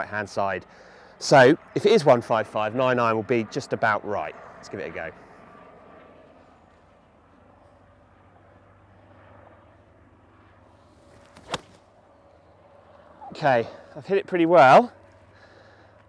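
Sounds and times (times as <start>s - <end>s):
quiet outdoor ambience: 0.0s - 16.0s
golf club striking ball: 11.2s - 11.8s.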